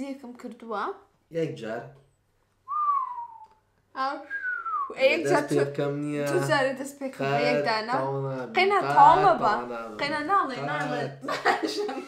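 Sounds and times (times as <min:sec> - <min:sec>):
person whistling: 0:02.7 - 0:03.6, 0:04.2 - 0:05.0.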